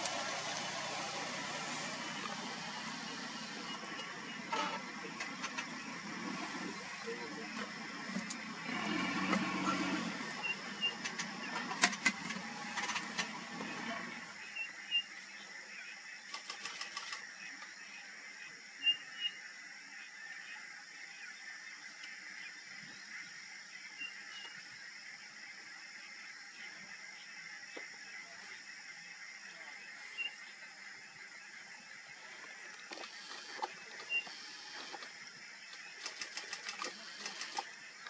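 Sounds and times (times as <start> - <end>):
vehicle engine running: 0.0 - 15.4.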